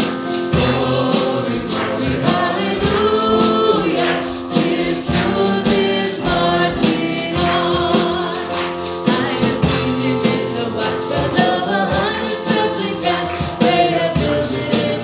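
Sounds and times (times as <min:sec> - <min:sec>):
drums: 0:00.0 - 0:15.0
keyboard: 0:00.0 - 0:15.0
voices singing into microphones: 0:00.2 - 0:15.0.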